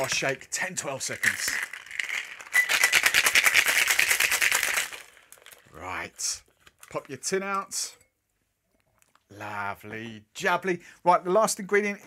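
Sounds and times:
ice rattling in cocktail shaker: 0.0 - 5.7.

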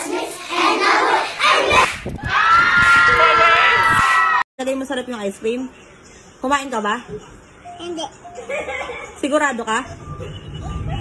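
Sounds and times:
children chanting in unison: 0.0 - 1.9.

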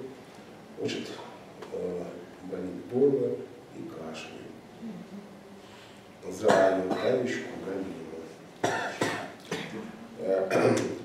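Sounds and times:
person coughing: 8.6 - 9.9, 10.5 - 10.9.

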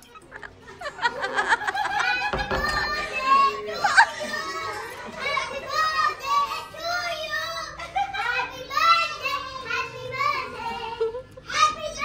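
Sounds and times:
young children calling and babbling: 0.0 - 12.0.

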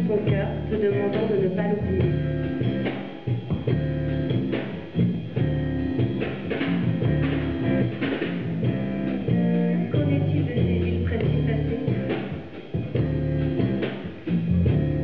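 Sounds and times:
bass guitar low notes: 0.0 - 15.0
drum kit and cymbals: 0.0 - 15.0
electric guitar: 0.0 - 15.0.

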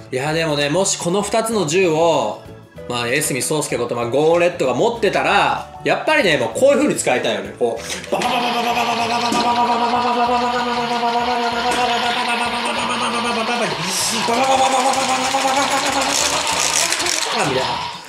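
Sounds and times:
toy electronic sound effects: 9.0 - 18.0.

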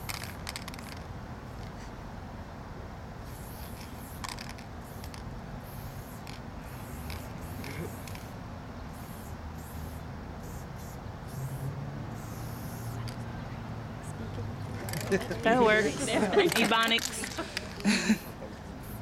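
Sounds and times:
spray-paint can hissing bursts: 3.2 - 13.2, 18.8 - 19.0.

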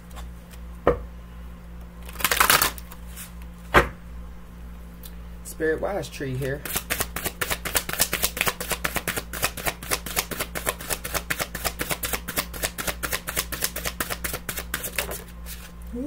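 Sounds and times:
cards being shuffled: 2.0 - 3.4, 6.6 - 15.8.

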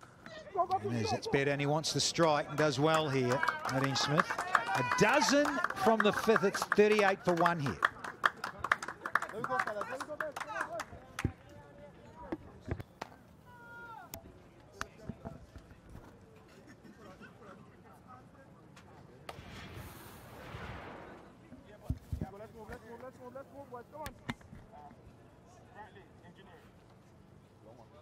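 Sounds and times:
scattered hand claps: 2.5 - 11.5
low crowd murmur: 7.7 - 28.0.

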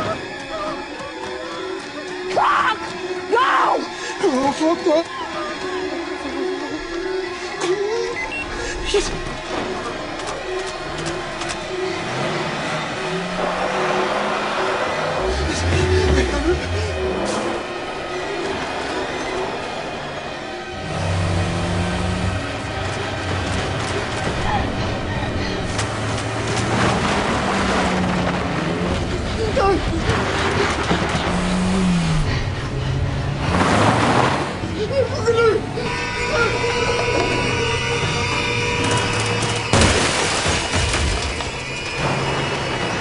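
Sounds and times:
car engine running: 9.3 - 20.0
car engine accelerating: 9.4 - 20.1, 20.8 - 35.8
tyres on gravel: 22.4 - 32.2.

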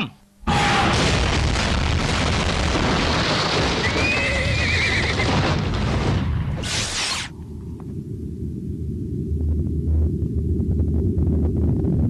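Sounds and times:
horse whinnying: 3.8 - 5.3.

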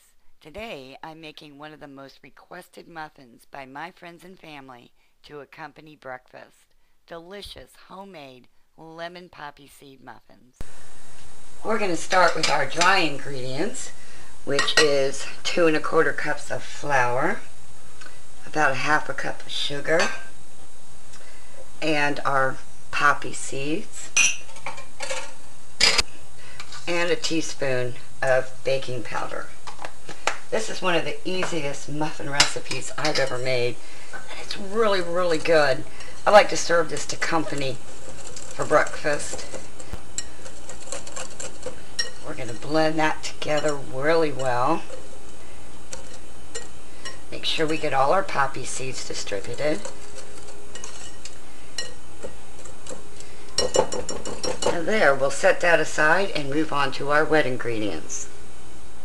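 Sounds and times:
kitchenware clinking: 24.2 - 26.0, 32.3 - 33.5, 36.4 - 45.1, 49.2 - 54.8
whisk stirring flour in bowl: 34.3 - 45.3, 45.9 - 47.2, 48.1 - 54.8.

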